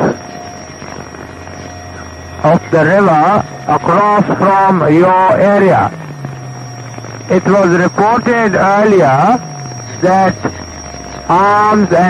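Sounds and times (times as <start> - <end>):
faint constant whine: 0.0 - 12.0
radio channel hum and hiss: 0.0 - 12.0.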